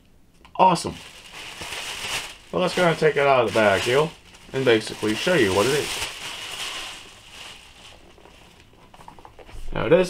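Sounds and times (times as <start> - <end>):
plastic bag rustling: 0.6 - 9.1.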